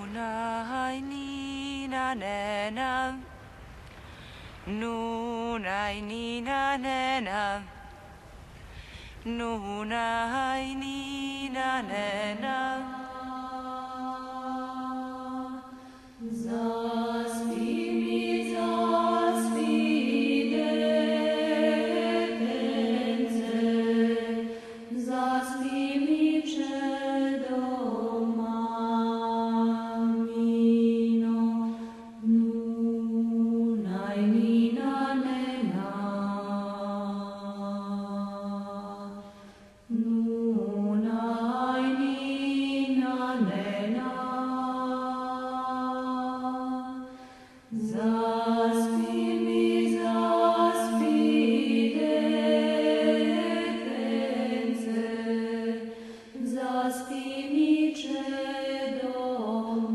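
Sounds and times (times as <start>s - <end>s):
person singing chant-like song: 0.0s - 3.4s, 4.6s - 8.0s, 9.2s - 59.9s.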